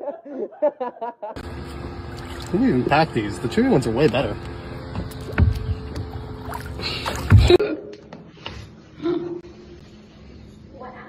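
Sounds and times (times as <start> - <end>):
motorboat engine rumble: 1.4 - 7.6.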